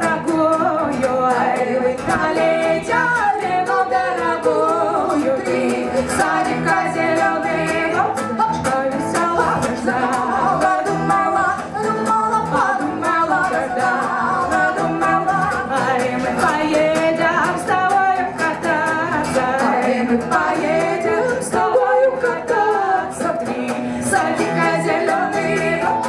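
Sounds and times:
strummed acoustic guitar: 0:00.0 - 0:26.0
women singing: 0:00.0 - 0:26.0.

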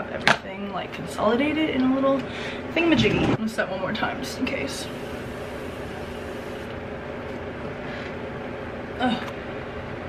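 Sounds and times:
electric fan blowing: 0:00.6 - 0:10.0.

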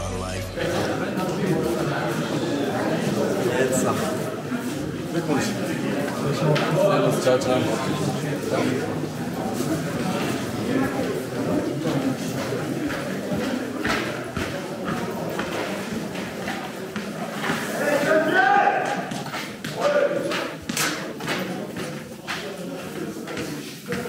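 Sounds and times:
murmur of voices: 0:00.0 - 0:24.0
footsteps on hard floor: 0:11.8 - 0:17.7.

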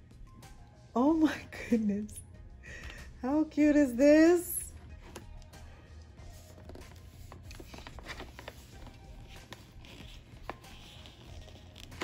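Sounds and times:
quiet background music: 0:00.0 - 0:12.0
decal sheet rustling: 0:04.8 - 0:12.0.

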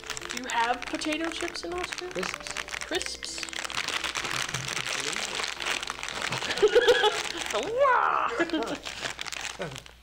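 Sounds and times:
plastic snack bag crinkling: 0:00.0 - 0:10.0
people laughing: 0:06.4 - 0:07.4.

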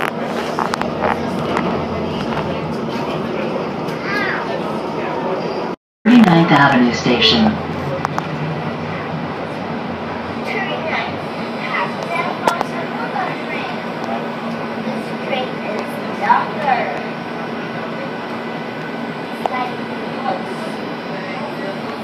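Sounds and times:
light rail car rumble: 0:00.0 - 0:22.0.

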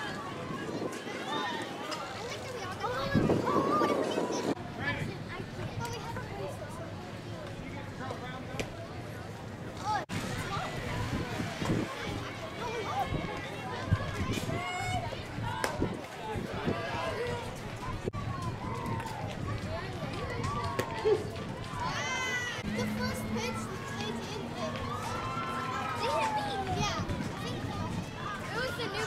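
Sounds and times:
girls calling out and cheering: 0:20.2 - 0:29.0
loud rising shout: 0:21.8 - 0:27.0.

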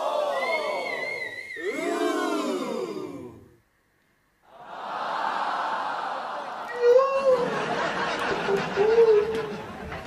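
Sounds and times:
high wavering whistle tone: 0:00.3 - 0:01.7.

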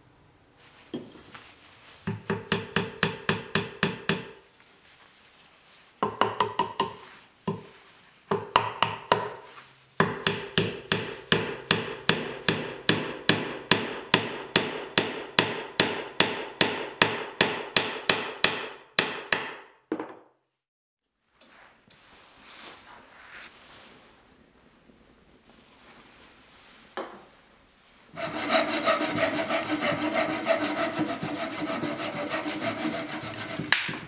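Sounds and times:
hammer tapping wooden wedge: 0:02.0 - 0:04.4, 0:06.0 - 0:07.7, 0:08.3 - 0:09.4, 0:10.0 - 0:20.2, 0:28.2 - 0:34.0.

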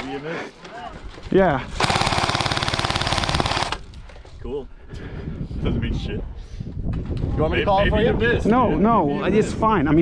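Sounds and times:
airsoft gun full-auto burst: 0:01.8 - 0:03.8.

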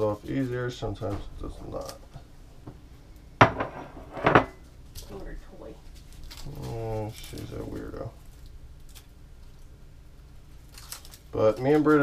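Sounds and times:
glass clinking on counter: 0:03.4 - 0:04.6.

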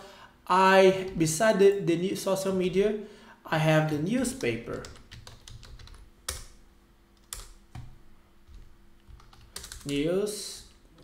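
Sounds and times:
typing on computer keyboard: 0:04.4 - 0:06.6, 0:07.2 - 0:10.0.

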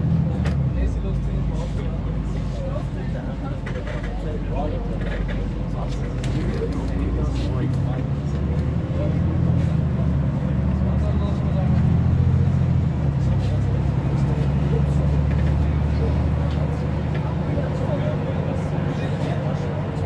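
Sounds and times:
bus engine droning: 0:00.0 - 0:20.0.

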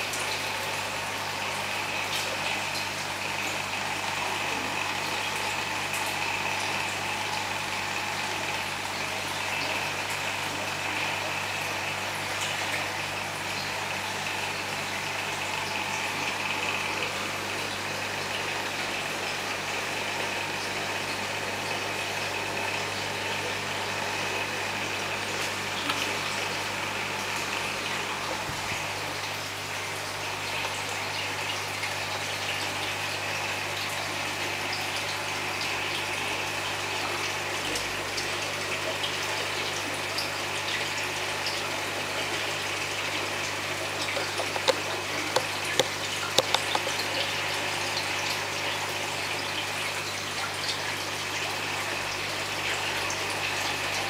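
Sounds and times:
water splashing and trickling: 0:00.0 - 0:54.0.

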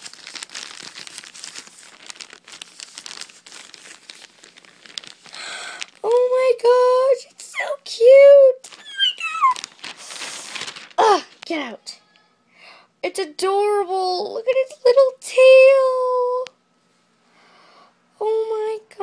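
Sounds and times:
package wrapping tearing: 0:00.0 - 0:06.2, 0:08.6 - 0:11.5
girl squealing excitedly: 0:08.7 - 0:09.7.

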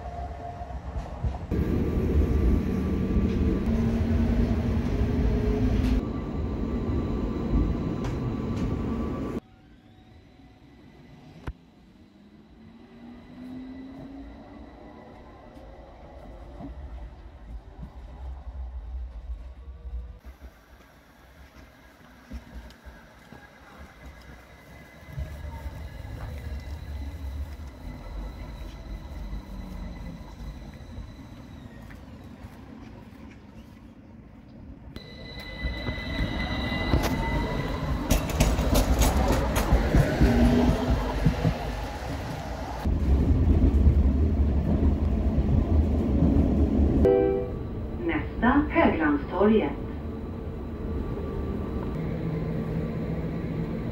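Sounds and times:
tram rumbling: 0:00.0 - 0:53.9
electric tram motors whining: 0:00.2 - 0:17.8, 0:35.0 - 0:53.9.

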